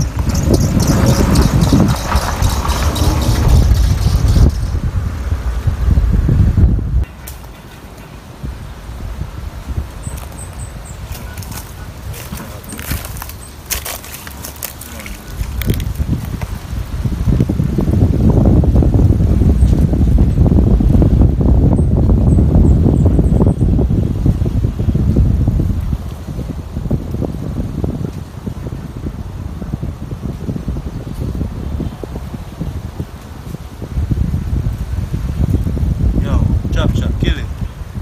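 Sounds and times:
wind buffeting microphone: 0:00.0 - 0:38.0.

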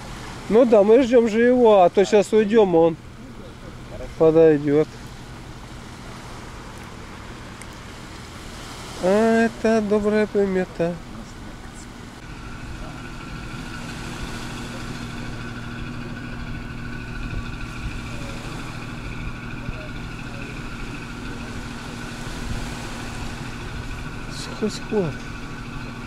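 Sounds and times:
ferry engines humming: 0:00.0 - 0:26.0.

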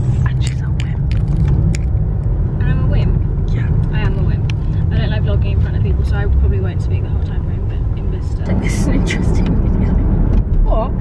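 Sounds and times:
car cabin road rumble: 0:00.0 - 0:11.0
woman speaking: 0:02.6 - 0:10.0.

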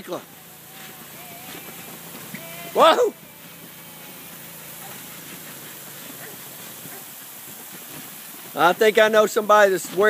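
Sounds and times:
sprinkler spraying water: 0:00.0 - 0:10.0.

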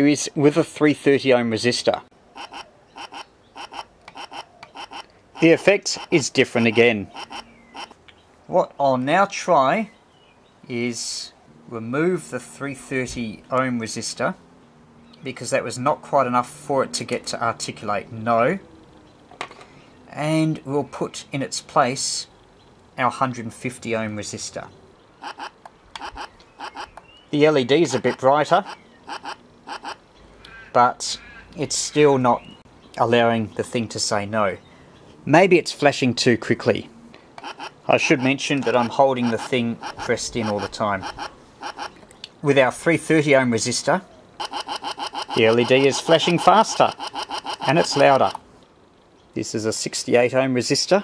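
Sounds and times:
stuttering toy voice fragments: 0:37.5 - 0:41.9, 0:44.4 - 0:48.4.

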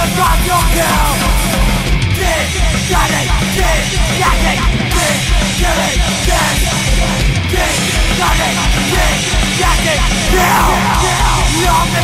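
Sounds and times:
punk rock song: 0:00.0 - 0:12.0
shouted vocal: 0:07.5 - 0:12.0.

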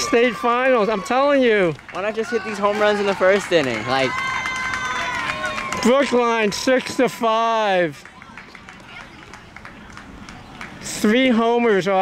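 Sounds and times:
faint background chatter: 0:07.8 - 0:11.9.

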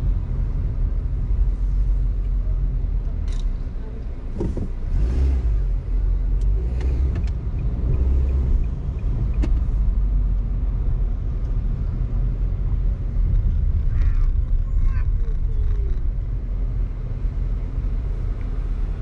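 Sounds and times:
car road rumble: 0:00.0 - 0:19.0.

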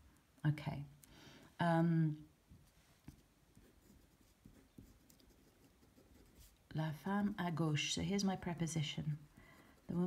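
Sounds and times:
pen scratching on paper: 0:03.1 - 0:06.6.

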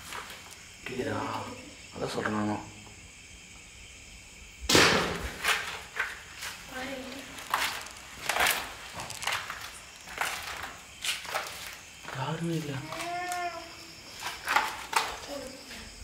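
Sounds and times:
loud thump: 0:04.7 - 0:05.4.

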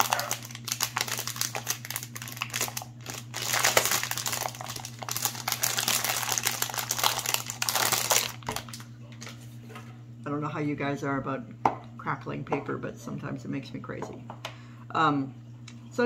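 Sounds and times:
cellophane crackling and crinkling: 0:00.0 - 0:08.8.

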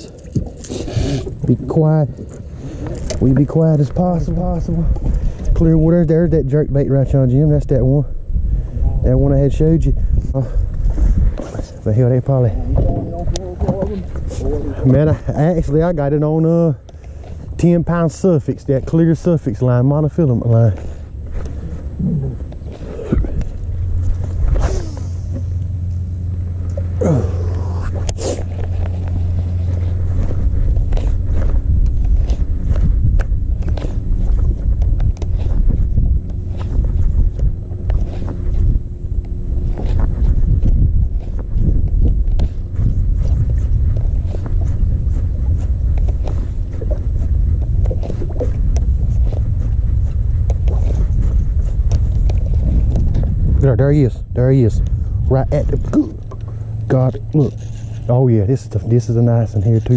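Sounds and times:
faint steady hum: 0:00.0 - 0:59.9
wind on microphone: 0:00.0 - 0:59.9.

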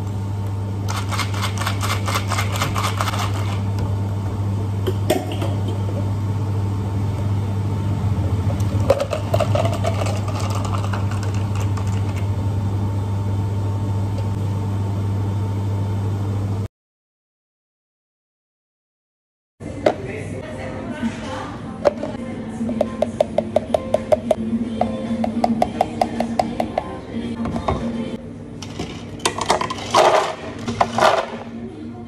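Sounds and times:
ice rattling in shaker: 0:00.9 - 0:03.6, 0:08.9 - 0:12.0
low hum: 0:03.4 - 0:16.7.

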